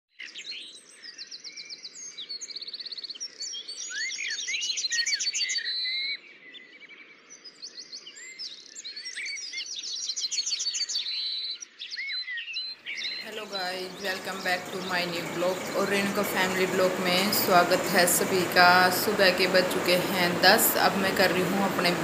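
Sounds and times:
birds chirping and singing: 0:00.2 - 0:22.0.

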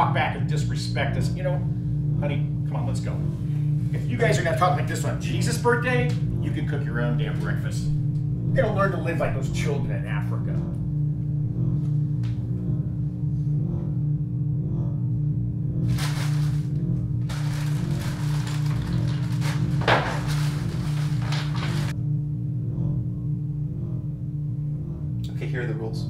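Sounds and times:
low drone film music: 0:00.0 - 0:26.0
wrapping paper tearing: 0:15.9 - 0:21.9.

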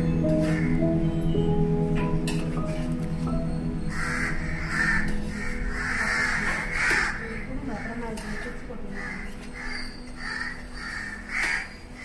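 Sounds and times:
background music: 0:00.0 - 0:12.0
crows cawing: 0:00.3 - 0:01.0, 0:03.8 - 0:12.0.

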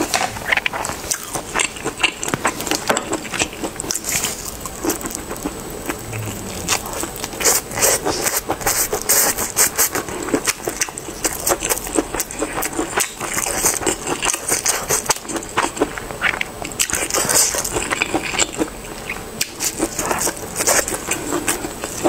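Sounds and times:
chewing with mouth clicks: 0:00.0 - 0:22.0.

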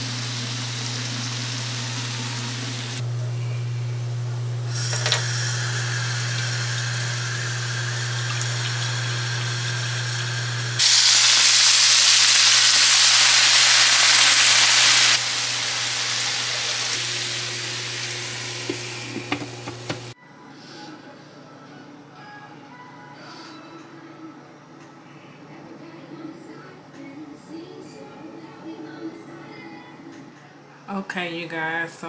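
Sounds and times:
food sizzling in a pan: 0:00.0 - 0:20.2
loud hiss: 0:10.7 - 0:19.0.

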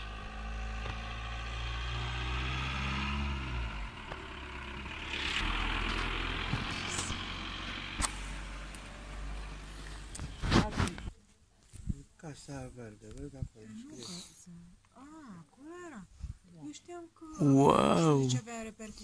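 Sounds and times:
car passing: 0:00.0 - 0:11.0.

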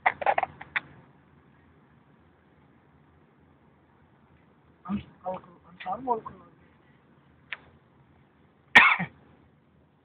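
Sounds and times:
person coughing: 0:08.8 - 0:09.2.

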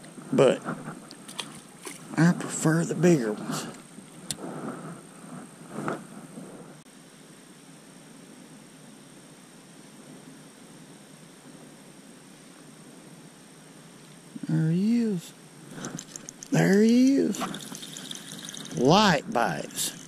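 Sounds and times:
steady hiss: 0:00.0 - 0:20.0.

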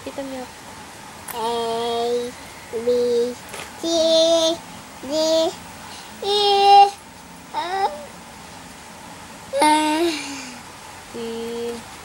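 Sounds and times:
toddler singing held notes: 0:01.3 - 0:05.6, 0:06.2 - 0:07.0, 0:07.6 - 0:08.1, 0:09.6 - 0:10.3.

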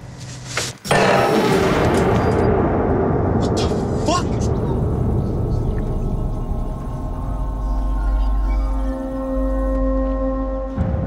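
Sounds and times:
truck engine rumbling: 0:03.7 - 0:10.6.

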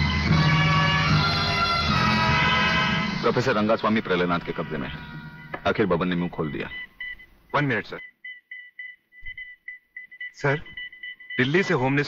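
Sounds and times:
rapid electronic beeps: 0:06.2 - 0:12.0.

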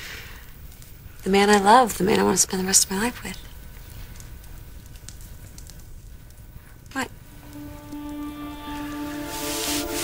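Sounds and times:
faint crackles: 0:00.0 - 0:10.0
low steady hum: 0:00.4 - 0:10.0.

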